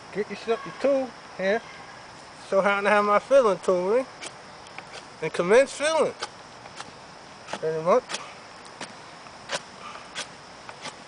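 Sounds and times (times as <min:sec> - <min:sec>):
knife scraping wood: 0:04.2 - 0:05.1, 0:06.2 - 0:11.0.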